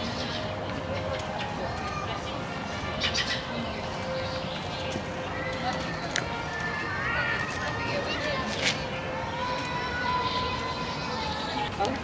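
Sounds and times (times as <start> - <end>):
small birds chirping: 0.0 - 6.2
murmur of crowd voices: 0.0 - 12.0.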